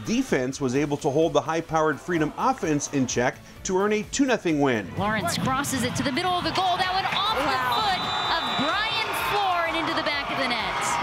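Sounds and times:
stadium crowd noise: 0:00.0 - 0:03.4, 0:04.0 - 0:11.0.

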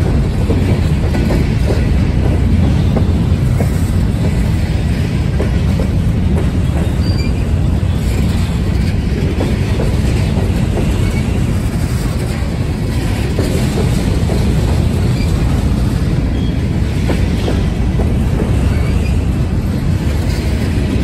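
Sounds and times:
clicking over rail joints: 0:00.0 - 0:21.0
train wheels rumbling on rail: 0:00.0 - 0:21.0.

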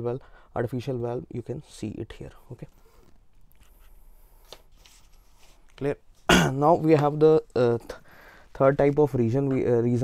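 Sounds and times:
paper notes rustling: 0:03.6 - 0:06.3
person speaking: 0:05.6 - 0:10.0.

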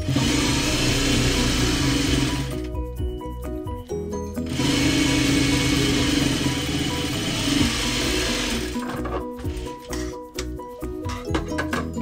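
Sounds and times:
sewing machine stitching fabric: 0:00.0 - 0:02.6
background music: 0:00.0 - 0:12.0.

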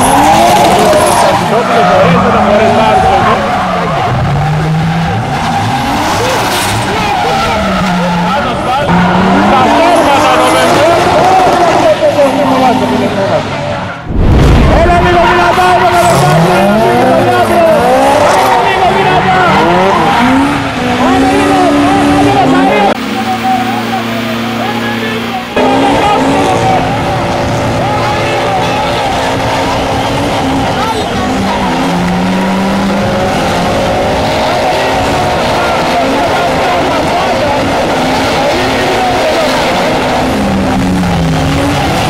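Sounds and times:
car engines revving hard: 0:00.0 - 0:42.0.

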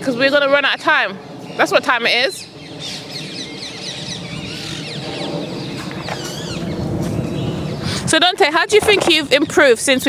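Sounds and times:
birds chirping and calling: 0:00.0 - 0:10.0
low outdoor rumble: 0:00.0 - 0:10.0.

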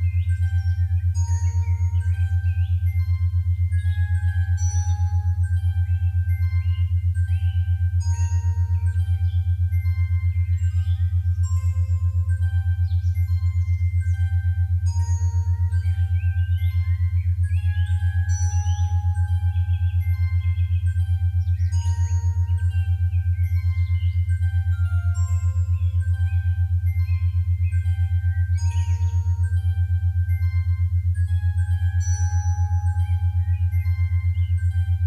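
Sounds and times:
chime-like bell notes: 0:00.0 - 0:35.0
pulsing low bass drone: 0:00.0 - 0:35.0.

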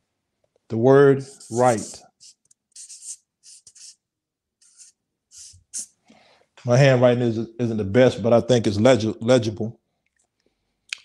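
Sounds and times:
marker writing on paper: 0:01.2 - 0:04.0, 0:04.6 - 0:06.0.

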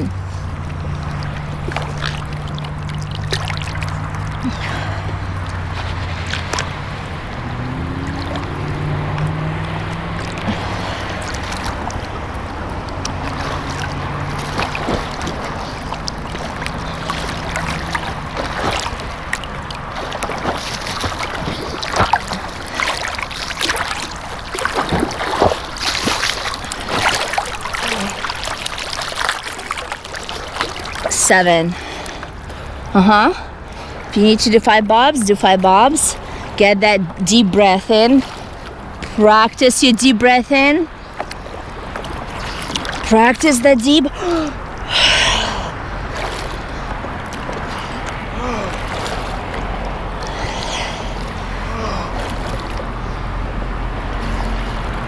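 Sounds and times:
distant motorboat engine drone: 0:00.0 - 0:55.0
swimmer's strokes splashing: 0:00.0 - 0:55.0
water sloshing and splashing: 0:00.0 - 0:55.0.

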